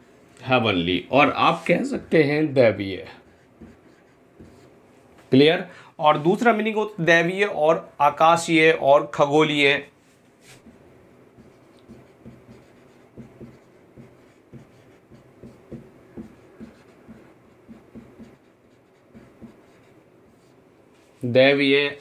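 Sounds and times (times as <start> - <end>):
marker pen writing on whiteboard: 3.0 - 4.8, 10.6 - 20.7.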